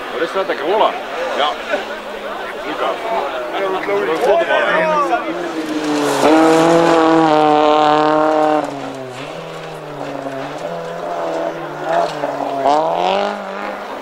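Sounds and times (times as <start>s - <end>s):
rally car engine approaching: 0.0s - 14.0s
rally car engine passing: 0.0s - 14.0s.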